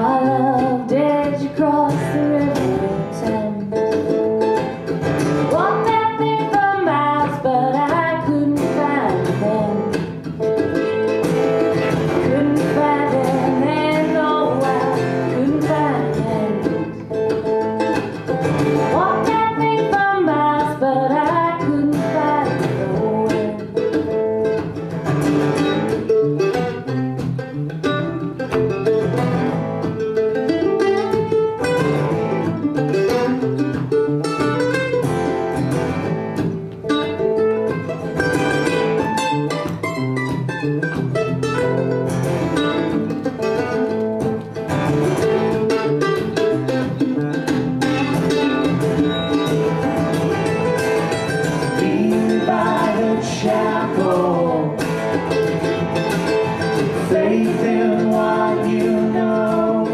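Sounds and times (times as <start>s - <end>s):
acoustic guitar: 0.0s - 59.9s
mandolin lead line: 0.0s - 59.9s.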